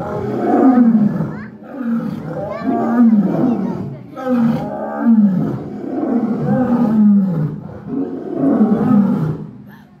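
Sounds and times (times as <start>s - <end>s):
lion roaring: 0.0s - 9.5s.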